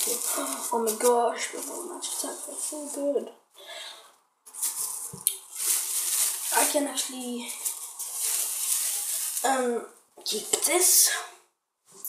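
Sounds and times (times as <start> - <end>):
plastic wrapping crinkling: 0.0 - 3.2, 4.5 - 10.9.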